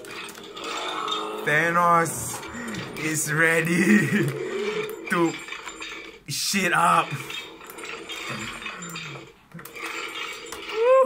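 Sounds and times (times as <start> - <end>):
man laughing: 3.6 - 4.4.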